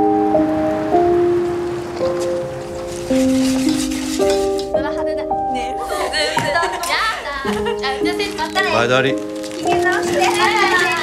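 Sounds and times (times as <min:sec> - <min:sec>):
slow soft piano: 0:00.0 - 0:11.0.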